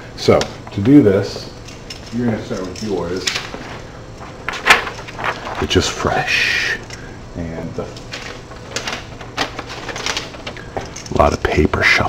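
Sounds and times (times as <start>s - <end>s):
paper rustling: 2.2s - 6.2s, 7.9s - 11.3s.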